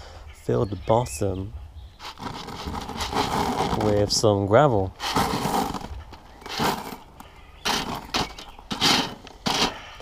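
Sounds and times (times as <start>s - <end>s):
gravel sliding off metal spade: 2.0s - 4.3s, 4.9s - 10.0s.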